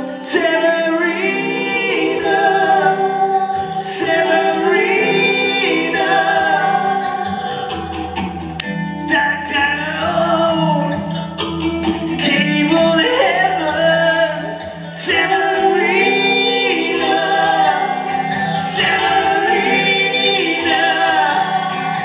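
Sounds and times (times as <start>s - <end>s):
man singing: 0.0s - 7.7s, 9.0s - 11.4s, 12.1s - 22.0s
acoustic guitar: 0.0s - 22.0s.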